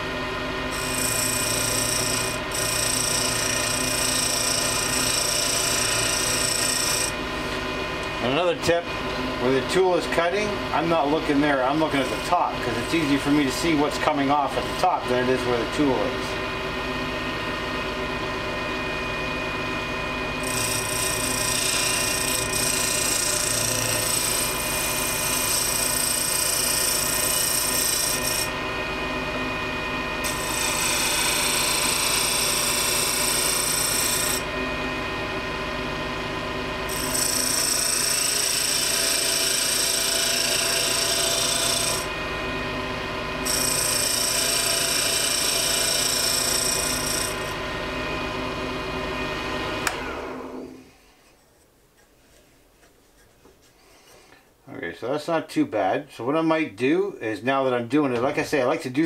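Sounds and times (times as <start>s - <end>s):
wood lathe motor hum: 0.0s - 50.9s
turning tool scraping wood: 0.7s - 16.4s, 20.4s - 28.6s, 30.2s - 34.5s, 36.9s - 42.2s, 43.4s - 47.6s.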